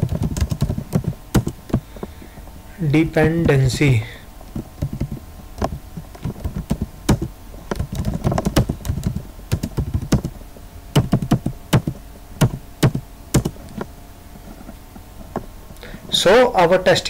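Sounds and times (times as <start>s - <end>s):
computer keyboard typing: 0.0s - 1.6s, 4.8s - 10.4s, 11.0s - 13.6s.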